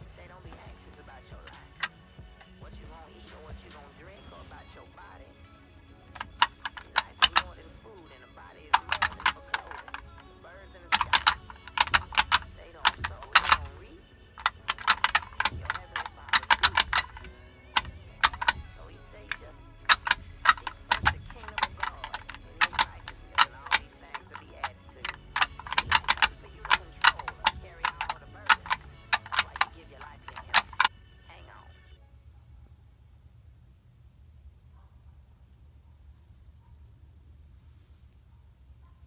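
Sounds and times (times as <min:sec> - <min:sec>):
sharp clicks and taps: 0:00.0 - 0:31.0.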